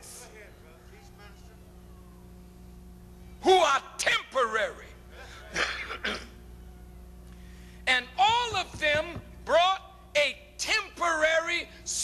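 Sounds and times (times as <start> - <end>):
man clearing his throat: 5.3 - 6.4.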